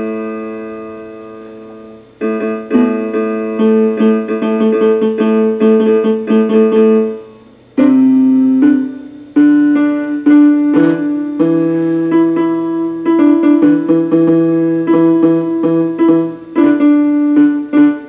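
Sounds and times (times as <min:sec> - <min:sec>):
electronic keyboard piano chords: 0:00.0 - 0:18.0.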